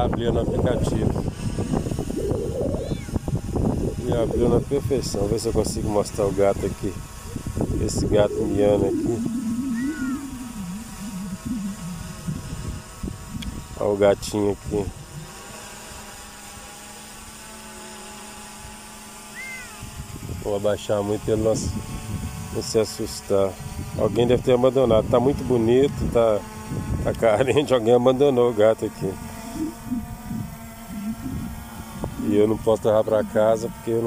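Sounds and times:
drone propellers humming: 0.0s - 34.0s
soft short low sounds: 7.2s - 12.8s, 29.4s - 32.6s.

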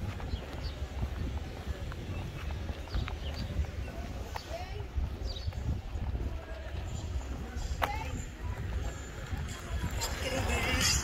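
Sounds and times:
faint voices: 0.0s - 11.0s
wind on microphone: 0.0s - 11.0s.

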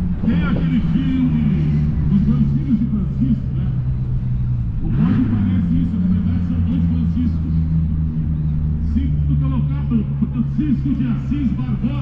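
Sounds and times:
man speaking over loudspeaker: 0.2s - 3.9s, 4.8s - 7.8s, 8.7s - 12.0s.

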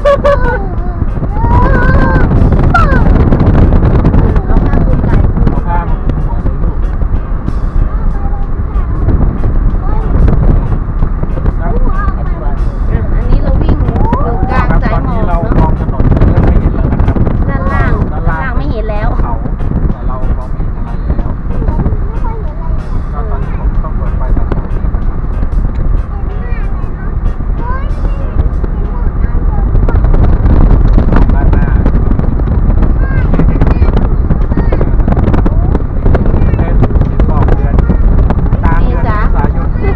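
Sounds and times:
car engine rumble: 0.0s - 39.9s
road and wind noise: 0.0s - 39.9s.

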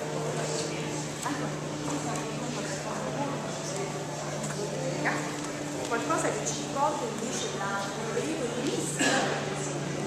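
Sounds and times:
crowd chatter: 0.0s - 10.0s
steady low hum: 0.0s - 10.0s.

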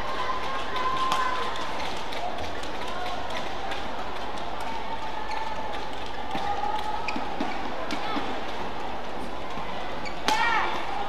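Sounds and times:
shoes squeaking on court: 7.0s - 7.8s, 10.0s - 10.3s
racket hitting shuttlecock: 10.2s - 10.8s.

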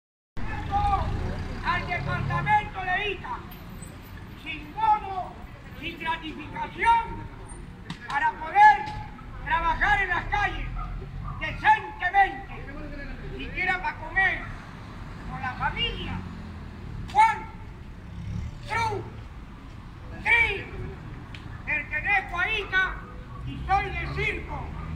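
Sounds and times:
car engines passing at low speed: 0.4s - 24.9s
low traffic rumble: 0.4s - 24.9s.

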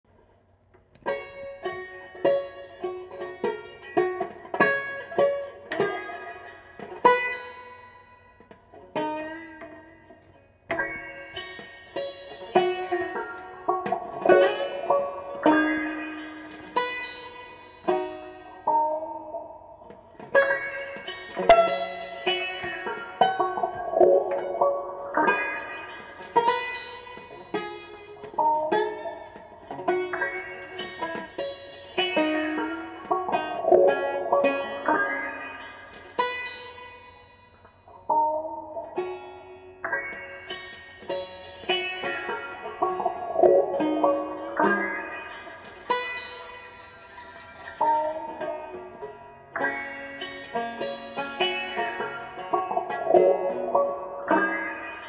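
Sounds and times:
banjo picking: 0.1s - 55.0s.

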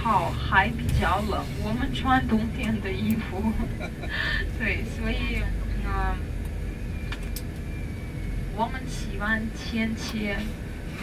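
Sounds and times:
coach engine and road noise: 0.0s - 11.0s.

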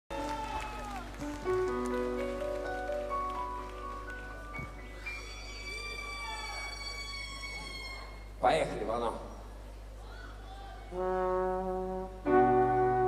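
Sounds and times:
orchestral sustained notes: 11.0s - 13.0s.

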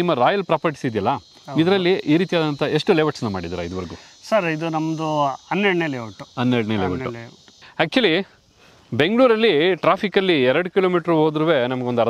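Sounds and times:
man speaking: 0.0s - 8.3s.

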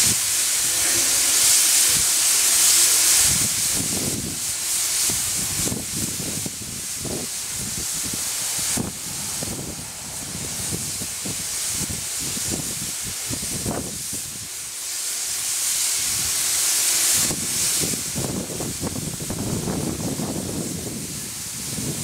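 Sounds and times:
high hiss of escaping steam: 0.0s - 22.0s.

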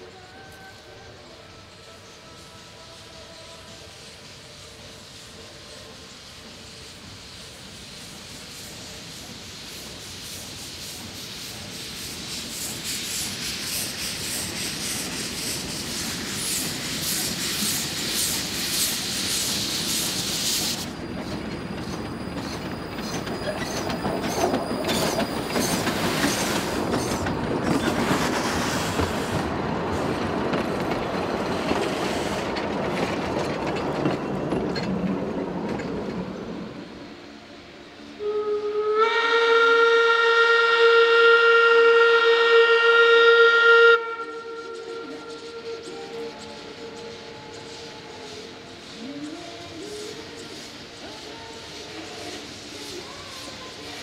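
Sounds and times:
steam hissing: 0.0s - 54.0s
train cars rattling over rail joints: 18.5s - 37.0s
steam whistle blast: 38.2s - 47.4s.

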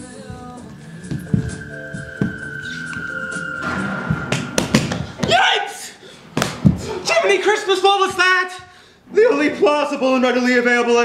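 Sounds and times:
sharp slap: 3.6s - 5.4s, 6.4s - 6.8s.

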